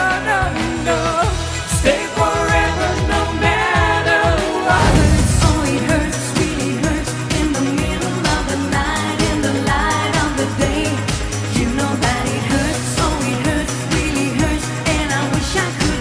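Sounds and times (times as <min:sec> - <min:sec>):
woman singing lead: 0:04.4 - 0:16.0.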